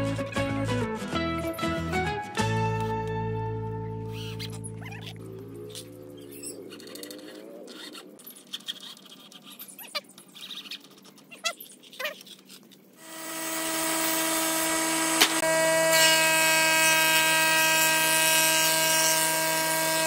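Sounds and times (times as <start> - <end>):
steady tone: 3.7 - 8.2
jointer planer motor running: 13.0 - 20.0.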